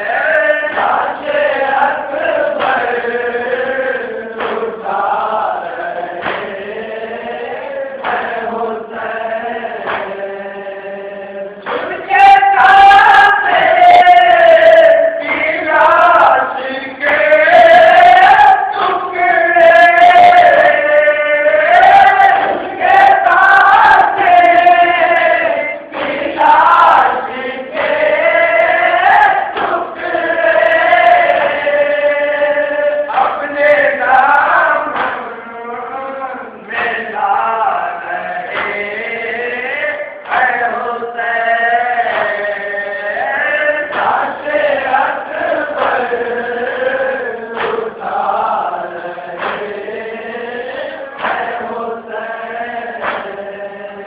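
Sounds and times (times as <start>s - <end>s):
men chanting in unison: 0.0s - 54.0s
hands slapping chest: 2.6s - 2.9s, 9.8s - 10.2s, 25.9s - 26.3s, 34.9s - 35.2s, 43.9s - 44.2s, 45.8s - 46.1s, 47.6s - 47.8s, 49.4s - 49.8s, 51.2s - 51.6s, 53.0s - 53.4s.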